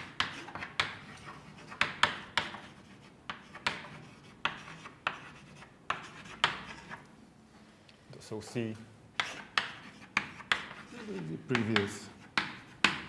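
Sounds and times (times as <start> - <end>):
chalk tapping and scratching: 0.0 - 7.0, 9.2 - 13.0.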